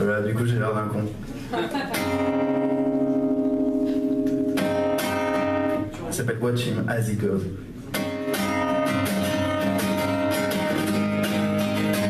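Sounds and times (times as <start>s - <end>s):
acoustic guitar chord strummed: 2.0s - 5.9s, 7.9s - 12.0s.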